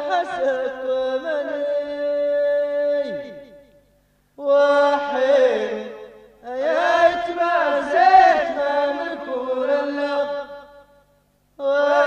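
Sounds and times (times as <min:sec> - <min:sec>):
person chanting unaccompanied: 0:00.0 - 0:03.7, 0:04.4 - 0:10.8, 0:11.6 - 0:12.0.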